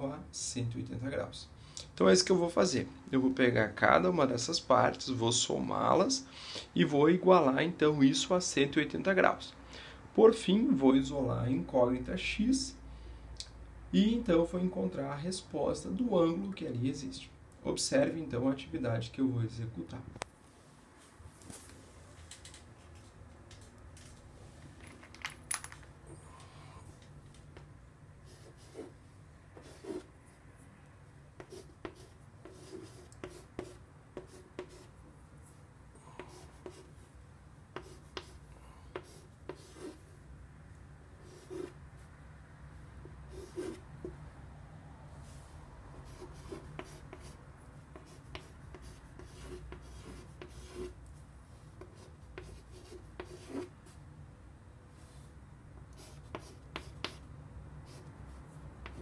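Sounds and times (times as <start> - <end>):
chalk scratching on chalkboard: 28.2 - 29.0, 29.6 - 30.1, 31.4 - 35.6, 36.2 - 37.1, 37.8 - 40.1, 41.2 - 41.8, 43.3 - 44.2, 45.2 - 54.0, 55.9 - 59.0
chalk tapping on chalkboard: 31.4 - 34.9, 37.8 - 39.9, 46.2 - 50.9, 51.8 - 53.7, 56.0 - 57.2.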